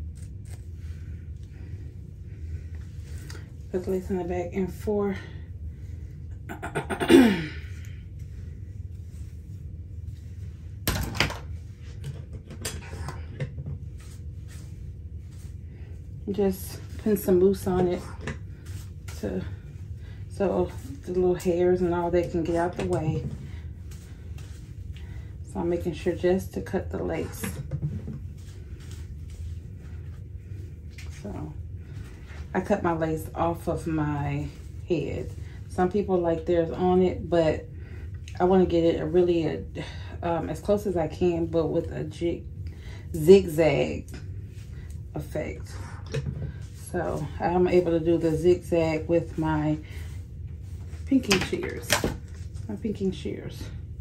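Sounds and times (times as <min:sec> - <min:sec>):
low room hum: 0:00.0 - 0:54.0
woman clearing her throat: 0:06.5 - 0:07.6
soft handling of lace: 0:13.7 - 0:17.3, 0:17.9 - 0:25.5, 0:27.9 - 0:32.6, 0:46.5 - 0:51.2.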